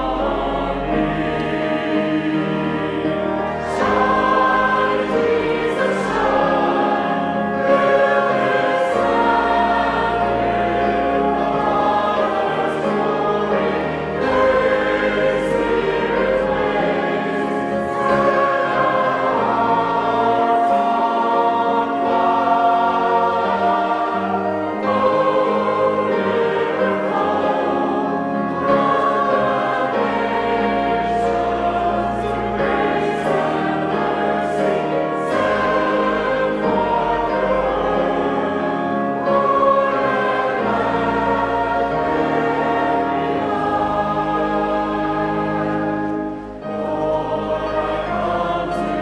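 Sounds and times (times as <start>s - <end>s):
choir and congregation singing hymn: 0.0s - 49.0s.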